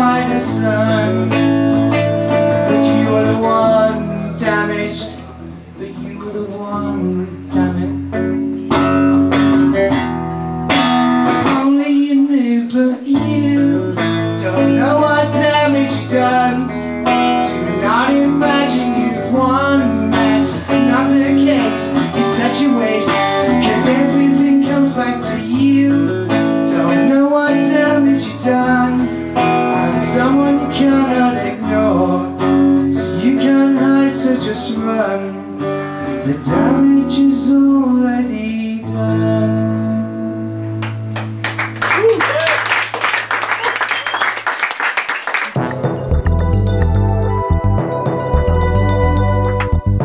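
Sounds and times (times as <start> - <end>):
guitar strumming: 0.0 - 42.0, 45.5 - 50.0
audience applause: 41.2 - 45.7
audience cheer: 41.8 - 44.8
electric guitar chord ringing: 45.6 - 50.0.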